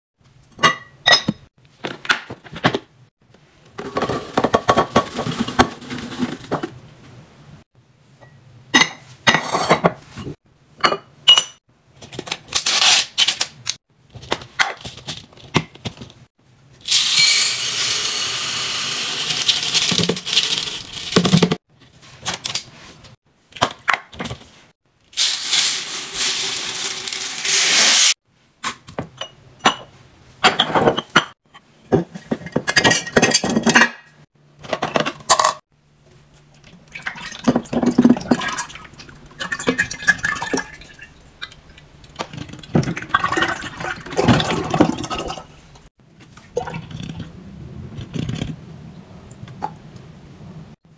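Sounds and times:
beads pouring into glass jar: 25.2s - 28.1s
liquid gurgling and splashing into jar: 36.7s - 45.6s, 46.4s - 47.3s.

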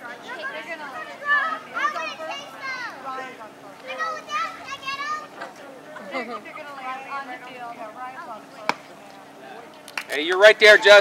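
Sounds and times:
children talking and calling out: 0.0s - 8.6s
spectators chattering: 0.0s - 11.0s.

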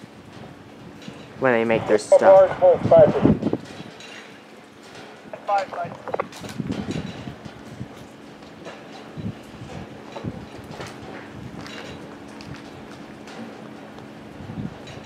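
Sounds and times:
distant diesel locomotive hum: 0.0s - 6.3s
wind on microphone: 0.2s - 4.0s, 5.3s - 8.1s, 9.1s - 13.0s, 14.2s - 15.0s.

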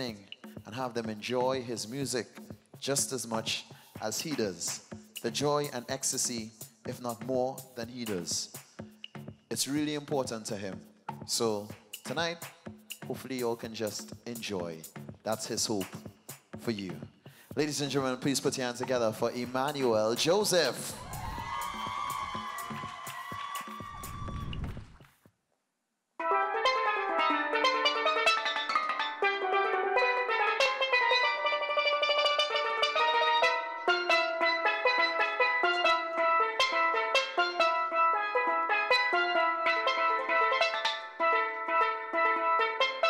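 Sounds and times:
steelpan melody: 26.2s - 43.0s.

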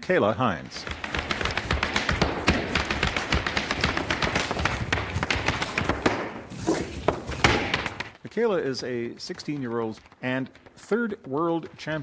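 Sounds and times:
hard shoes tapping on floor: 0.7s - 8.2s.

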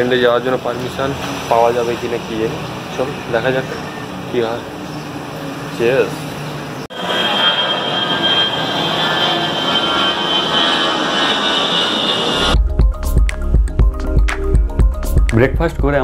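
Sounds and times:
jet airliner roar with whine: 0.0s - 12.6s
music with heavy bass beat: 12.6s - 16.0s.

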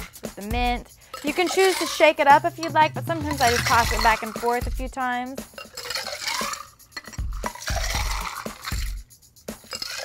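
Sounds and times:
liquid sloshing: 3.2s - 4.6s, 5.5s - 8.9s, 9.7s - 10.0s
ice clinking against glass: 5.5s - 8.9s, 9.6s - 10.0s.

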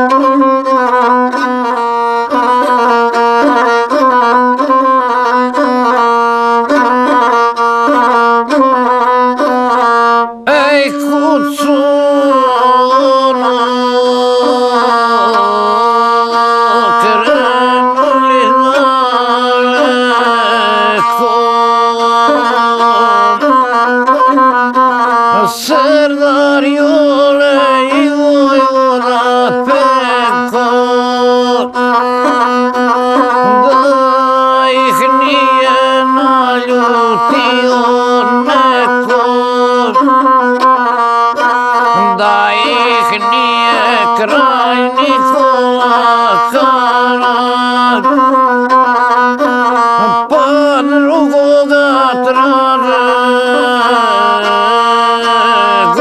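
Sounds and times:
bowed single-string fiddle: 0.0s - 56.0s
man singing: 0.0s - 56.0s.

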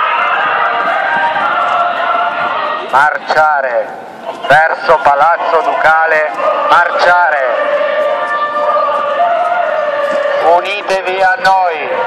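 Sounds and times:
man's voice through megaphone: 2.9s - 7.8s, 10.3s - 12.0s.

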